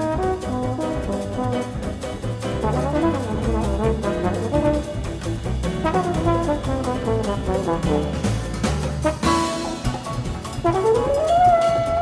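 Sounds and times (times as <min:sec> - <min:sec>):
solo trombone: 0:00.0 - 0:02.0, 0:02.6 - 0:05.0, 0:05.8 - 0:08.4, 0:09.0 - 0:09.8, 0:10.6 - 0:12.0
double bass: 0:00.0 - 0:12.0
drums: 0:00.0 - 0:12.0.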